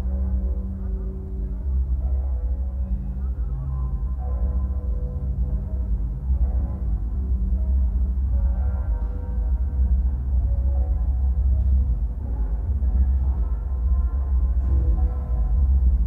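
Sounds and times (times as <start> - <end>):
low rumble: 0.0 - 16.0.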